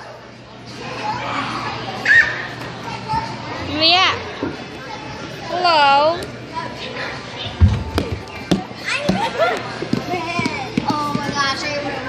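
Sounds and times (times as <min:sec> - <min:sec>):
busy play area background noise: 0:00.0 - 0:12.0
young child squealing: 0:02.0 - 0:02.4.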